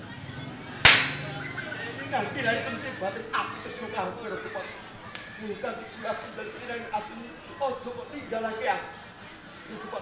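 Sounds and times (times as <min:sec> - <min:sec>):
sharp ringing crack: 0:00.9 - 0:01.3.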